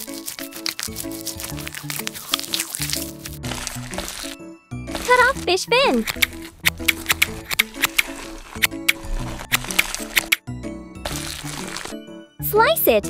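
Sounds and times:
background music: 0:00.0 - 0:13.0
knife scraping fish scales: 0:06.0 - 0:10.4.

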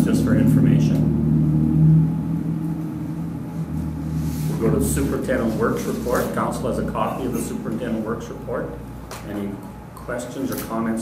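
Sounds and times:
mechanical hum with pitched tones: 0:00.0 - 0:11.0.

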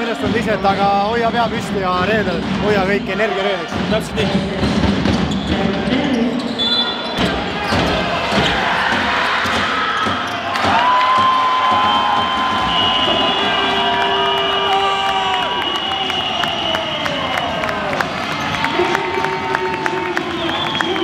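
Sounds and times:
basketball bouncing on court: 0:07.2 - 0:13.3.

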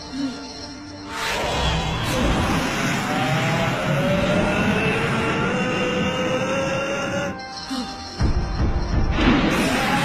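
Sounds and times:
engine-like roar with whine: 0:01.2 - 0:07.2.

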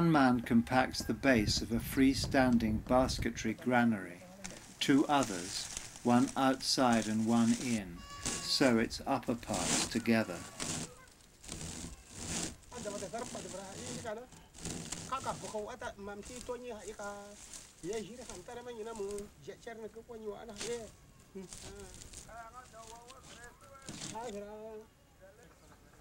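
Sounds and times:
men talking: 0:00.0 - 0:10.6, 0:12.7 - 0:14.3, 0:15.1 - 0:26.0
straw matting rustling: 0:00.9 - 0:24.8.

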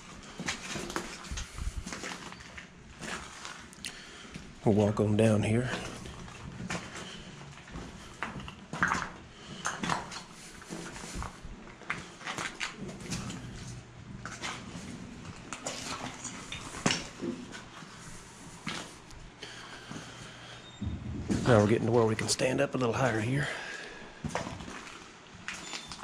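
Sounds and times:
footsteps crunching on rubble: 0:00.1 - 0:19.0.

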